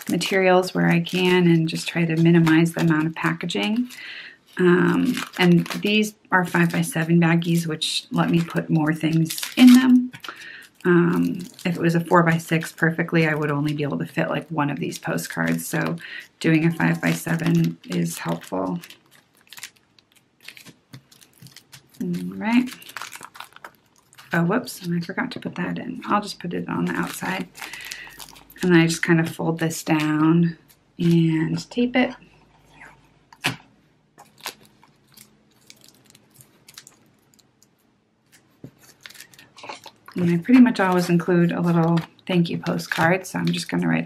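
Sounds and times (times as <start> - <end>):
plastic sleeve rustling: 0.0 - 25.4, 26.0 - 31.2, 32.3 - 44.0.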